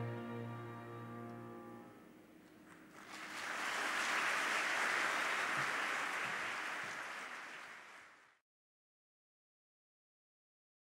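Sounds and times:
audience applauding: 0:02.6 - 0:08.4.

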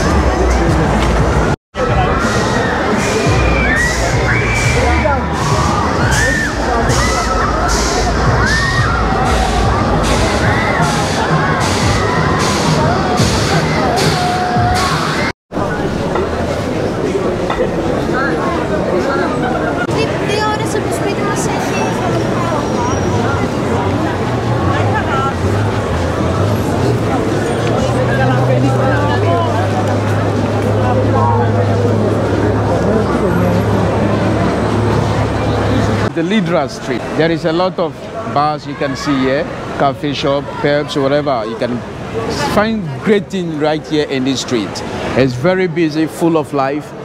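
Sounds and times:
crowd voices and shouts: 0:00.0 - 0:47.0
people talking: 0:00.0 - 0:47.0
loud music with steady beat: 0:06.9 - 0:15.3.

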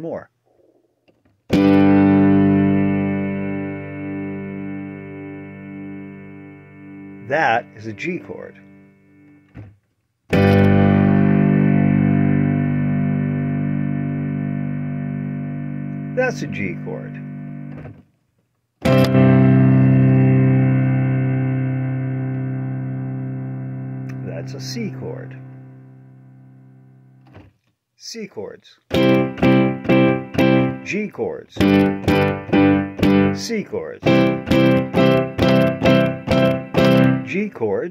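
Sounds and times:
guitar chord strummed: 0:01.5 - 0:09.5, 0:10.3 - 0:17.8, 0:18.8 - 0:27.2, 0:28.9 - 0:31.0, 0:31.6 - 0:37.4.

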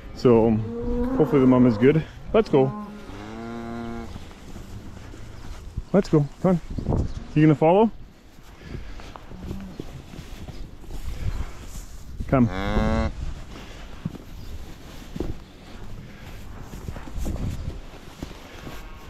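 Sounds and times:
cow mooing: 0:00.5 - 0:05.0
footsteps rustling through straw: 0:01.4 - 0:19.0.

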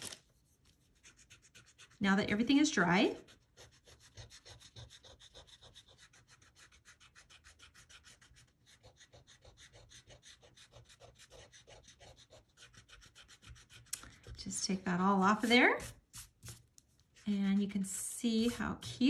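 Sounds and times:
eraser scrubbing on paper: 0:01.0 - 0:02.5, 0:03.1 - 0:13.9, 0:15.2 - 0:19.0.

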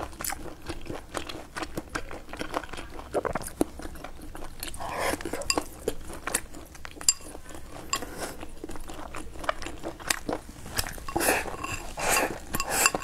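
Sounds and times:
chewing: 0:00.0 - 0:13.0
chopsticks clicking on ceramic bowl: 0:05.4 - 0:05.7, 0:07.0 - 0:08.1, 0:11.0 - 0:13.0
rice shoveled from bowl: 0:10.6 - 0:13.0.

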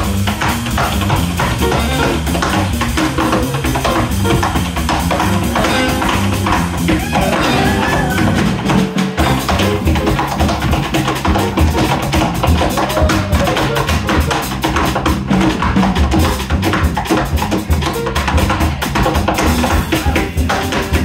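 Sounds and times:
bass: 0:00.0 - 0:21.0
drums: 0:00.0 - 0:21.0
piano: 0:00.0 - 0:21.0.

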